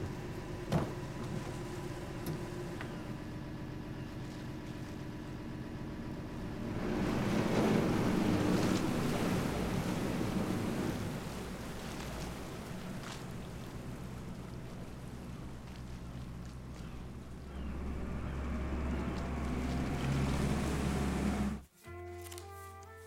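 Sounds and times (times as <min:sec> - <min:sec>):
propeller churning water: 0:00.0 - 0:21.6
boat engine running: 0:00.0 - 0:21.7.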